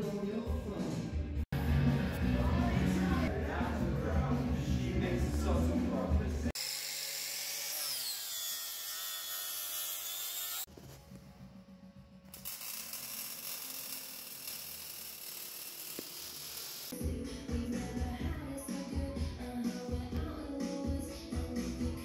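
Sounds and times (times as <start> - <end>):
background music: 0.0 - 6.5, 16.9 - 22.0
power tool whining: 6.6 - 10.7, 12.3 - 16.9.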